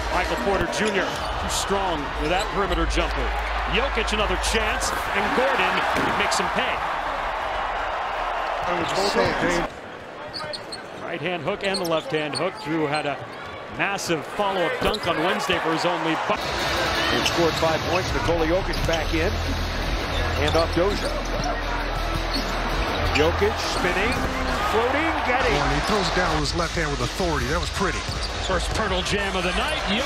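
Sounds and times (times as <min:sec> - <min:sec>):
arena crowd noise: 0:00.0 - 0:30.0
sneaker squeaks: 0:10.2 - 0:11.0, 0:11.6 - 0:13.6, 0:20.1 - 0:24.6, 0:28.0 - 0:28.5.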